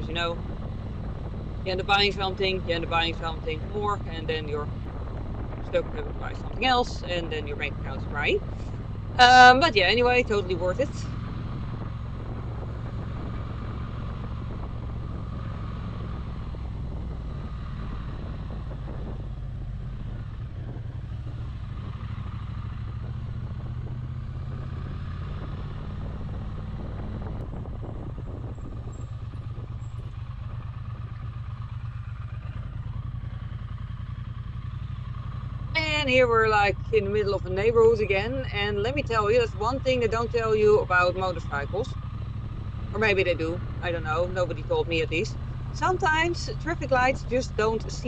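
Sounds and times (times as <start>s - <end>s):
motorcycle engine running: 0.0s - 48.0s
road and wind noise: 0.0s - 48.0s.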